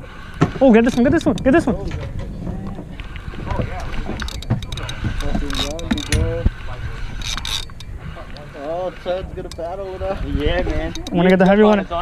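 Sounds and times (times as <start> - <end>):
fishing reel whirring and clicking: 0.0 - 12.0
wind rumble on microphone: 0.0 - 12.0.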